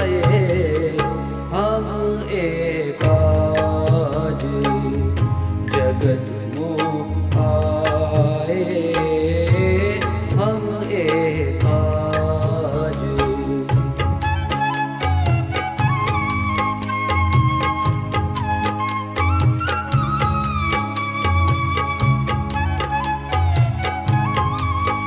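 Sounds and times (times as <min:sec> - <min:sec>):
deep bass notes: 0:00.0 - 0:25.0
devotional song melody: 0:00.0 - 0:25.0.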